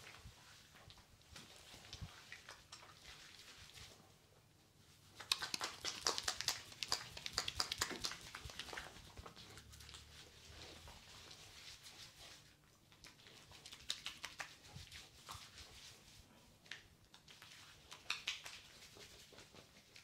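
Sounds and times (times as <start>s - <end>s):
hands squishing soapy lather: 0.0s - 4.2s, 4.8s - 20.0s.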